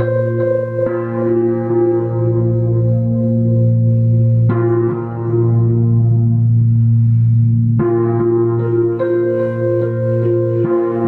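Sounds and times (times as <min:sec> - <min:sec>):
electric piano chords: 0:00.0 - 0:11.0.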